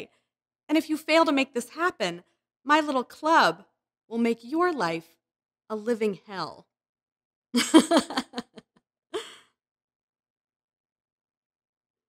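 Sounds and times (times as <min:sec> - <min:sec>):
woman laughing: 0:07.6 - 0:09.4.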